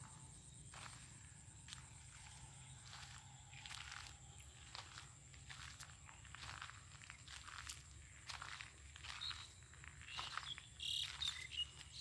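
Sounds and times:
crickets and insects droning: 0:00.0 - 0:12.0
footsteps crunching on dry clods: 0:00.0 - 0:12.0.

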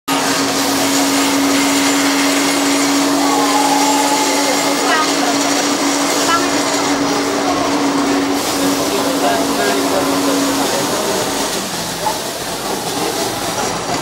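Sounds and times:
loud mechanical whirr with hum: 0:00.1 - 0:14.0
faint voices: 0:03.1 - 0:13.6.

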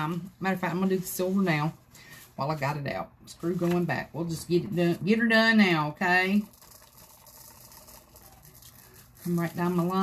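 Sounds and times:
glitter trickling off paper: 0:06.3 - 0:10.0.

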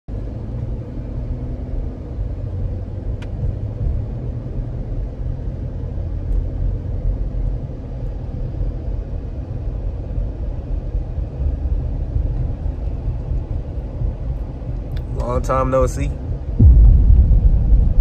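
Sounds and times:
car cabin road rumble: 0:00.1 - 0:18.0.

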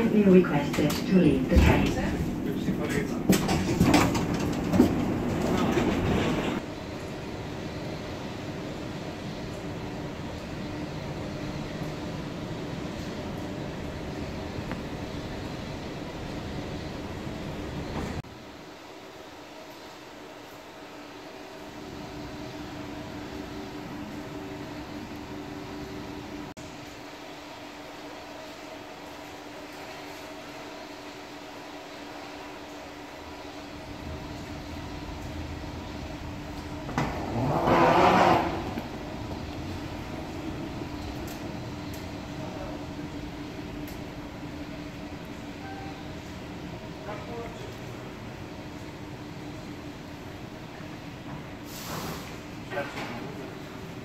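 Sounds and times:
escalator machinery hum: 0:00.0 - 0:54.0.

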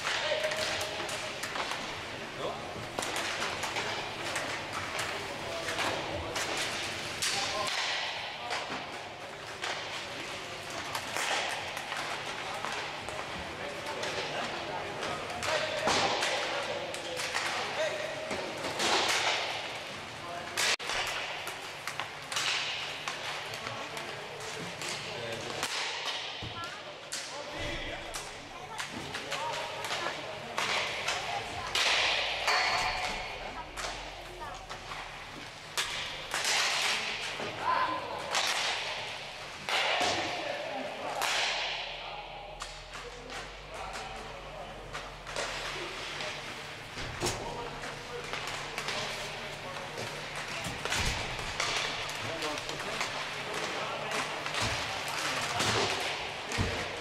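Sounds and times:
pucks striking rink boards: 0:00.0 - 0:57.0
sticks hitting pucks: 0:00.0 - 0:57.0.

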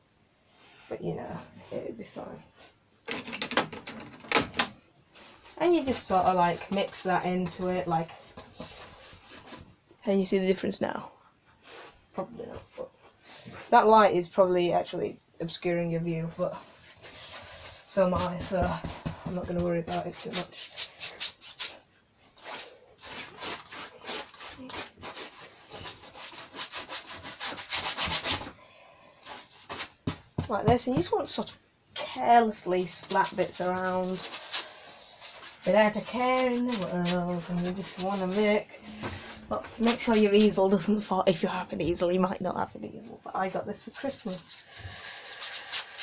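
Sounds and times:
paintbrush scrubbing canvas: 0:16.4 - 0:21.8, 0:22.4 - 0:28.6, 0:32.7 - 0:40.8, 0:43.9 - 0:46.0.

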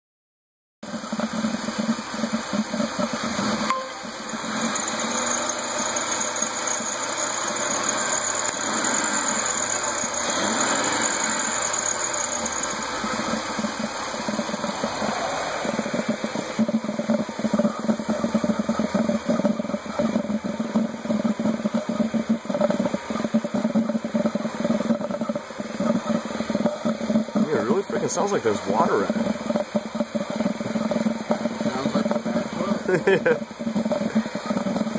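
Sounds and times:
car engine gurgling: 0:00.8 - 0:34.9.

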